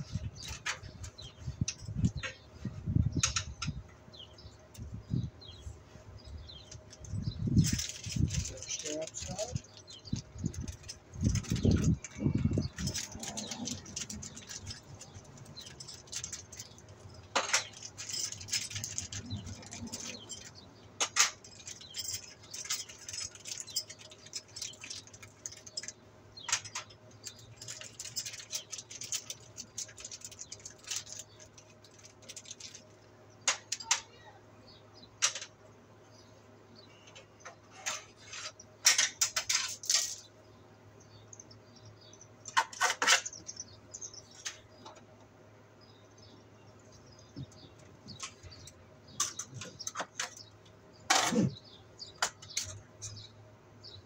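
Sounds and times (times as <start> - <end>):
hardware clicks and rattles: 6.6 - 34.2, 47.1 - 54.0.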